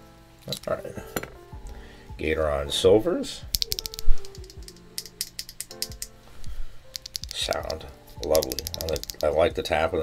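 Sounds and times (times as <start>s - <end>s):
keyboard switch tapping: 3.5s - 6.1s, 7.0s - 9.3s.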